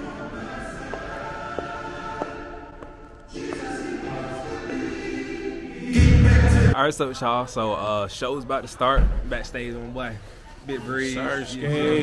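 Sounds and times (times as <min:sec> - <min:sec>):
choir-like sung chords: 0:00.0 - 0:06.8.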